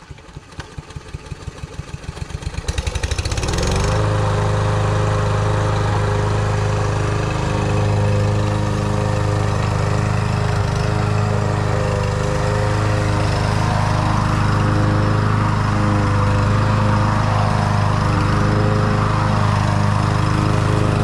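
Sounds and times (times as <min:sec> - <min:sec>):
lawn mower engine running: 0:00.0 - 0:21.0
hiss of cutting grass: 0:02.3 - 0:21.0.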